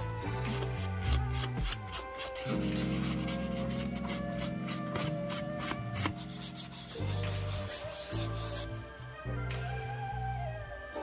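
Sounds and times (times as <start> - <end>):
sandpaper rubbing on leather: 0.0 - 8.7.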